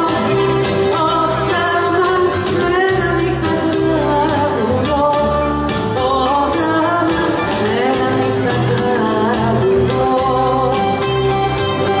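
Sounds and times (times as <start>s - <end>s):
acoustic guitar: 0.0s - 12.0s
bouzouki: 0.0s - 12.0s
keyboard: 0.0s - 12.0s
person singing: 0.0s - 12.0s.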